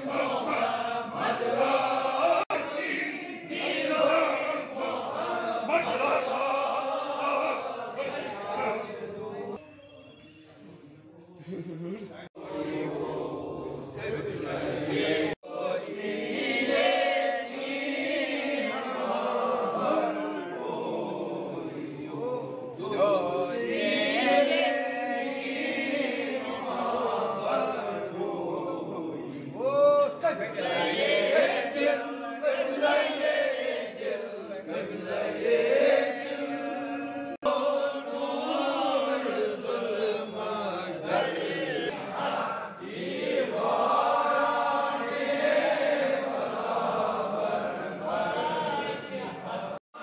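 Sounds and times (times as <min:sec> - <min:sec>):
men chanting in unison: 0:00.0 - 0:09.6, 0:12.3 - 0:50.0.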